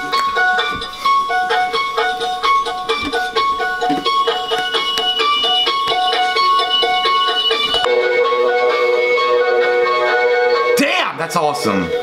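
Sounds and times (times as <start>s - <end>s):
electronic tune from toy speaker: 4.3s - 7.9s.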